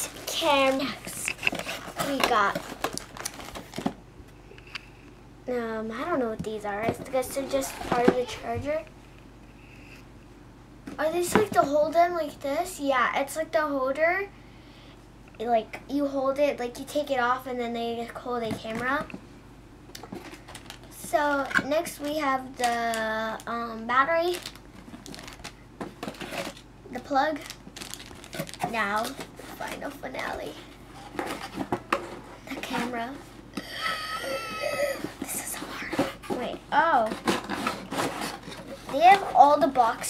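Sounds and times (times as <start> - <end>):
plastic bags rustling: 0.0 - 4.0, 20.1 - 23.5, 24.2 - 26.7, 27.3 - 31.8
cardboard scraping and rubbing: 7.3 - 8.7, 35.2 - 39.8.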